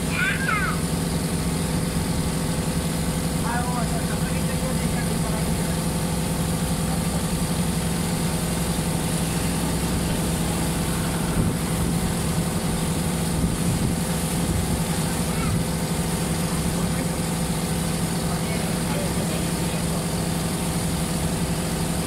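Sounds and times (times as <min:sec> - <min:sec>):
boat engine droning: 0:00.0 - 0:22.0.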